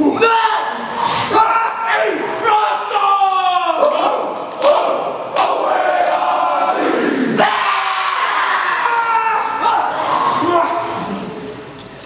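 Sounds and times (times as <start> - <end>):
group chanting and shouting: 0.0 - 11.5.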